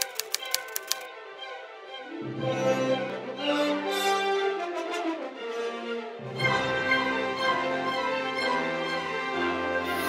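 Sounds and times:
typewriter key clicks: 0.0 - 1.1
bowed string music: 0.2 - 10.0.

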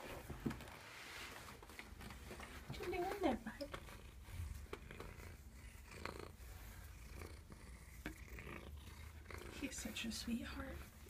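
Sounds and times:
cat purring: 1.6 - 11.0.

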